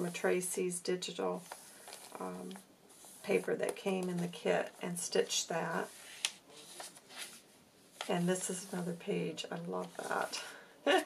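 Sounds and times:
paper page rustling: 0:01.4 - 0:04.4, 0:05.7 - 0:08.8.

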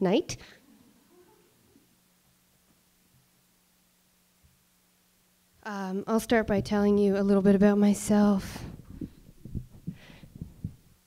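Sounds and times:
microphone handling thumps: 0:06.3 - 0:07.0, 0:08.6 - 0:11.0.

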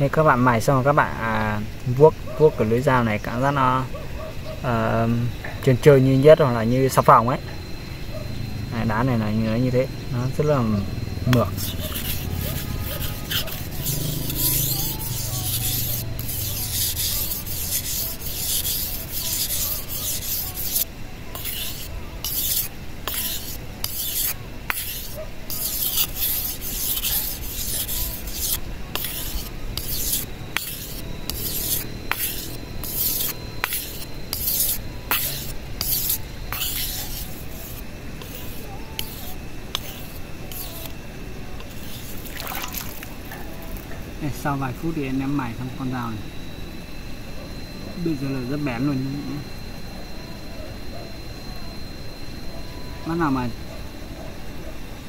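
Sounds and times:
knife blade scraping on sharpening stone: 0:11.3 - 0:41.0, 0:41.6 - 0:43.0.

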